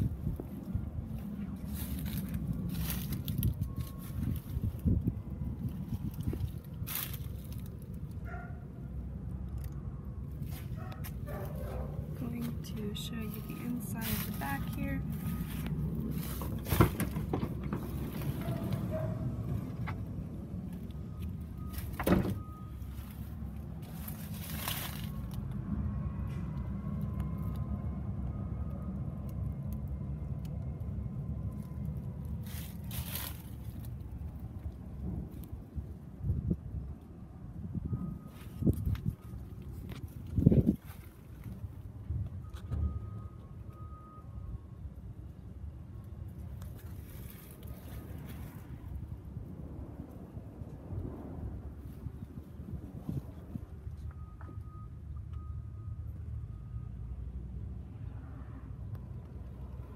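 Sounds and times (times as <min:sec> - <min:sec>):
steady low rumble: 0:00.0 - 0:54.9
sliding van door opening: 0:16.3 - 0:18.8
knocks and thumps: 0:16.4 - 0:17.9.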